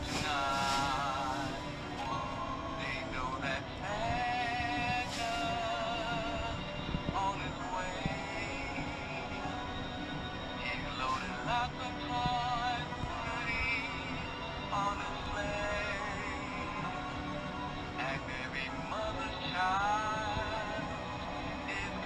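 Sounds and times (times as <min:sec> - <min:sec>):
toy speaker playing christmas song: 0:00.0 - 0:22.0.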